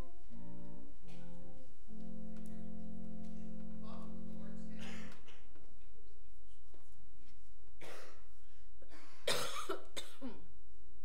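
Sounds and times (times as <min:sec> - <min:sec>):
person coughing: 0:04.8 - 0:05.4, 0:07.8 - 0:08.3, 0:09.0 - 0:10.5.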